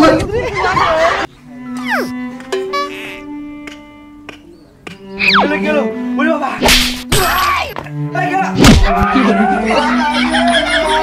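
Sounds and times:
background music: 0:01.2 - 0:11.0
short chirping sounds: 0:01.8 - 0:03.2
whip-like swish: 0:06.6 - 0:07.0.

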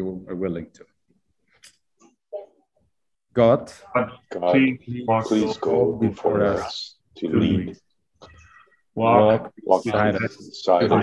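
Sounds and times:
faint breaths and small noises: 0:05.2 - 0:11.0.

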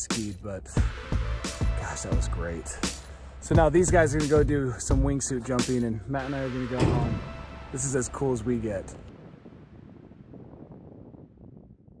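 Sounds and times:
wind buffeting microphone: 0:06.8 - 0:12.0.

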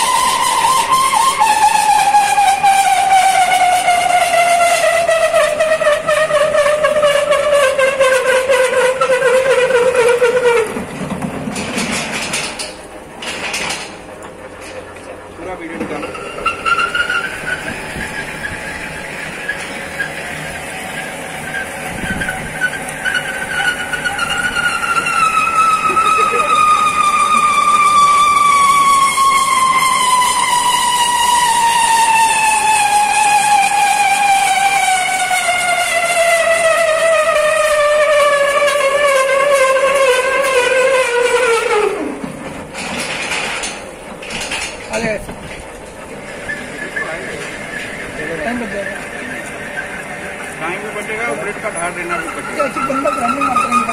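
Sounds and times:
knocks and rattles: 0:08.2 - 0:15.1, 0:42.2 - 0:48.0.

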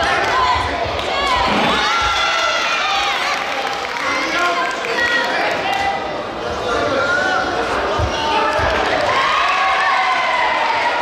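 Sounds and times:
people shouting in hall: 0:00.0 - 0:03.6, 0:06.7 - 0:11.0.

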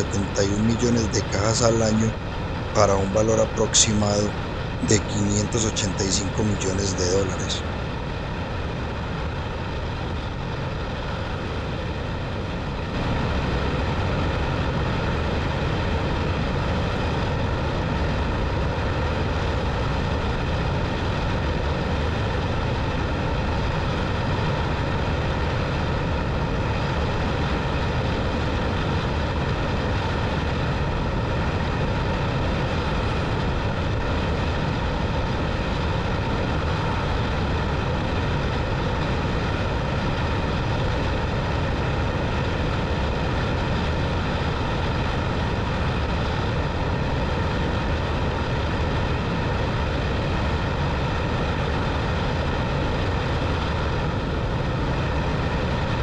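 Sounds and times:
motorcycle engine drone: 0:00.0 - 0:07.6.

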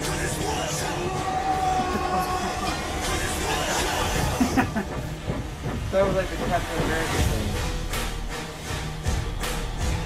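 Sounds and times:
men laughing: 0:01.4 - 0:05.6
steady rushing hiss: 0:01.4 - 0:10.0.

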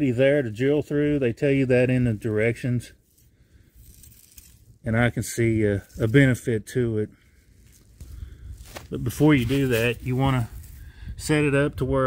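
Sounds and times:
man's voice: 0:08.9 - 0:10.6, 0:11.2 - 0:12.0.

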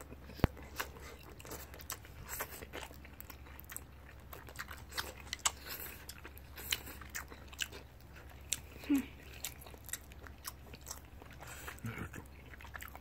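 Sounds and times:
chewing and mouth noises: 0:00.0 - 0:13.0.

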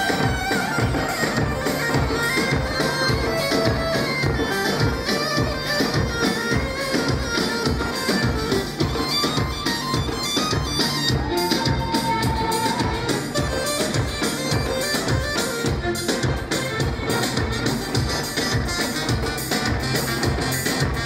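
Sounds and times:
large drum beating: 0:00.0 - 0:21.0
reed wind instrument melody: 0:00.0 - 0:21.0.

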